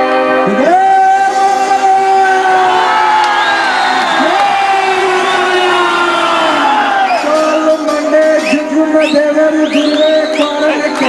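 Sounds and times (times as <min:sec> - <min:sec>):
man singing through microphone: 0:00.3 - 0:03.2, 0:07.4 - 0:11.0
crowd cheering: 0:00.5 - 0:11.0.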